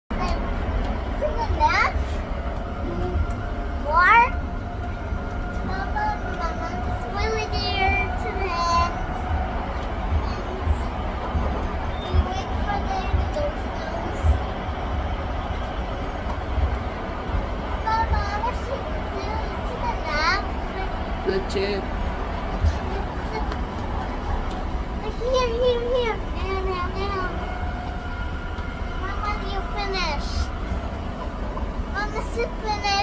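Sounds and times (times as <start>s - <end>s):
steady low rumble: 0.1s - 33.0s.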